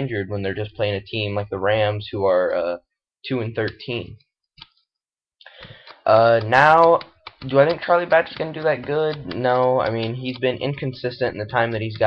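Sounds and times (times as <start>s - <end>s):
person talking: 0.0s - 4.2s, 5.6s - 12.0s
soft breath: 5.4s - 6.1s.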